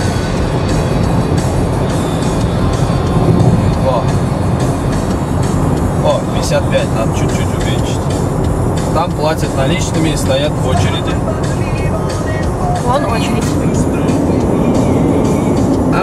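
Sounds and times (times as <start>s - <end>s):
background music: 0.0s - 16.0s
car road and engine noise: 0.0s - 16.0s.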